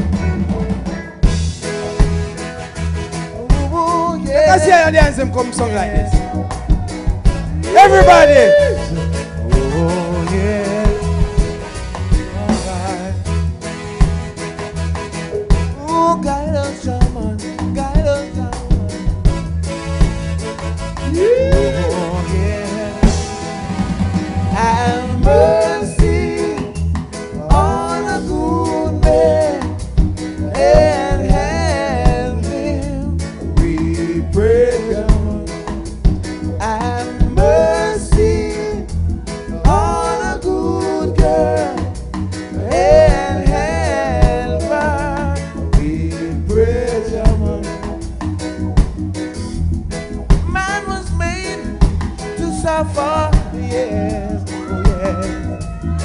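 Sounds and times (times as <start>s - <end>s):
bass: 0.0s - 56.0s
drum kit hits: 0.0s - 56.0s
guitar: 0.0s - 56.0s
live reggae band: 0.0s - 56.0s
person singing: 7.6s - 11.6s, 21.1s - 23.8s, 24.5s - 29.8s, 30.4s - 35.7s, 36.6s - 42.0s, 42.6s - 48.0s, 50.5s - 56.0s.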